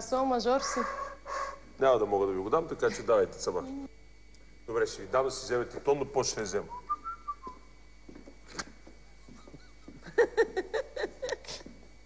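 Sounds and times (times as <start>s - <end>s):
person laughing: 9.1s - 11.7s.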